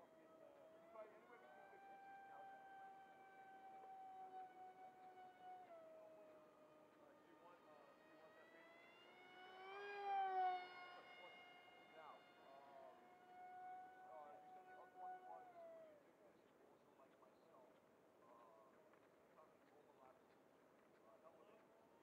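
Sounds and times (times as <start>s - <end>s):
model plane motor whine: 0.1s - 16.0s.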